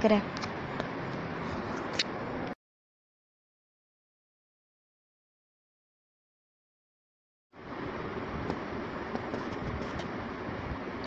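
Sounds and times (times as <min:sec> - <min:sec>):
steady rumbling noise: 0:07.6 - 0:11.0.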